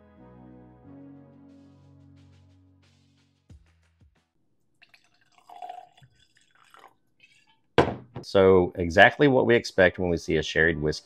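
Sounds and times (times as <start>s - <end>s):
liquid pouring into glass: 4.8s - 7.5s
liquid dripping: 4.8s - 7.7s.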